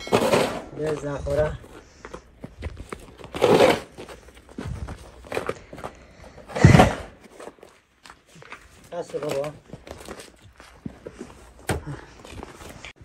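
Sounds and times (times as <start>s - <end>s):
snow shovel scraping snow: 3.4s - 4.0s.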